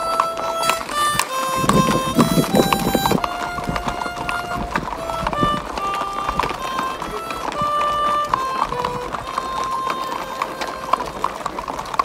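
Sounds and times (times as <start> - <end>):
harmonica slow melody: 0.0 - 11.2
horses' hooves clip-clopping: 0.0 - 12.0.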